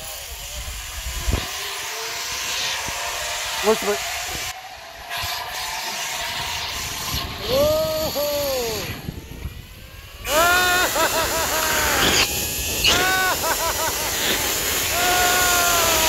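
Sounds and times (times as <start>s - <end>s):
zipline trolley rumbling on cable: 0.0s - 16.0s
wind rushing past microphone: 6.3s - 13.1s
person yelling and whooping: 7.4s - 9.0s, 10.2s - 12.1s, 12.8s - 14.0s, 14.9s - 16.0s.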